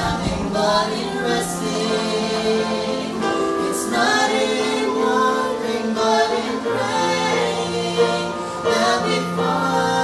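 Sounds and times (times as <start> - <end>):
woman and man singing gospel: 0.0 - 10.0.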